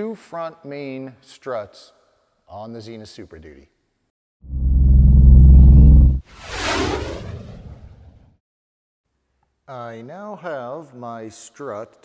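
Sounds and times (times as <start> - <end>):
propeller plane engine drone: 4.5 - 8.1
whoosh: 4.5 - 8.4.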